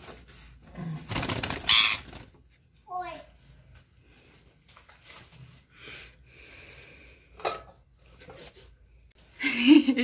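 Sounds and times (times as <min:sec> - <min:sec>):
parakeet squawk: 0:01.6 - 0:02.2.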